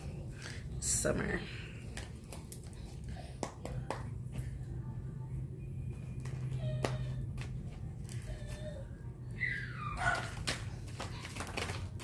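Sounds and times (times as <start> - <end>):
steady low hum: 0.0 - 9.6
dog whining: 6.4 - 7.3, 8.0 - 11.2.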